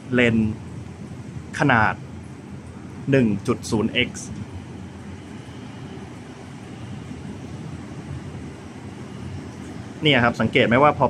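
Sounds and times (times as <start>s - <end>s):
distant city traffic rumble: 0.0s - 11.0s.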